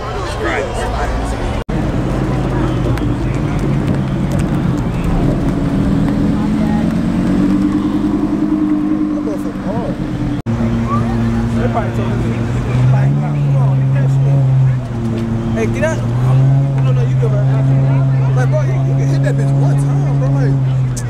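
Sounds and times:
crowd chatter: 0.0s - 21.0s
car engine at low revs: 1.2s - 21.0s.

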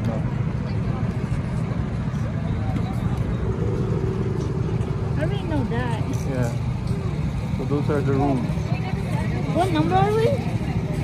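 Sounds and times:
faint voices: 0.0s - 11.0s
go-kart engines rumbling: 0.0s - 11.0s.

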